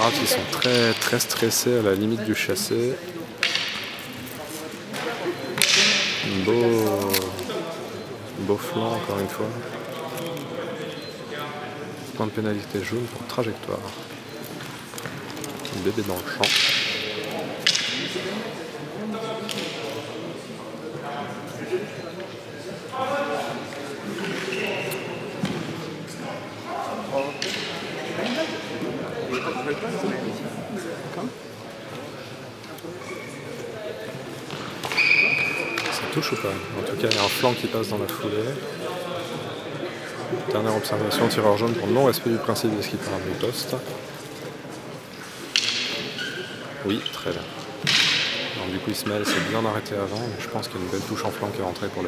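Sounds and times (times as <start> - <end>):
commentator speaking: 0.0 - 3.0
low voices talking: 0.0 - 52.0.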